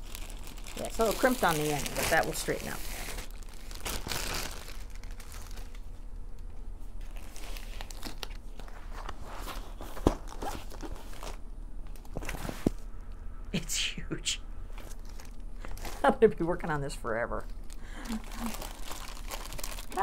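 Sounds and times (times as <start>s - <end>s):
plastic and paper wrapping crinkling: 0.0s - 6.0s, 6.8s - 12.8s, 14.8s - 20.0s.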